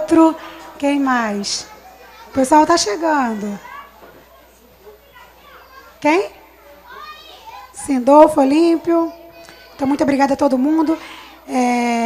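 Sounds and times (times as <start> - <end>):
background chatter of people: 0.0 - 12.0
low electrical hum: 0.0 - 12.0.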